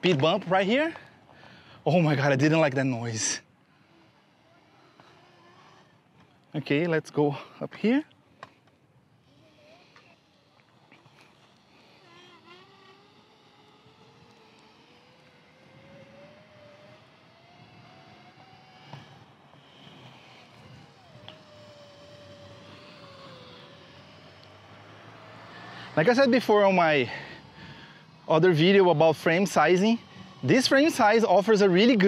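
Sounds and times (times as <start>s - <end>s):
electric motors whining: 3.2s - 6.5s, 8.6s - 32.0s.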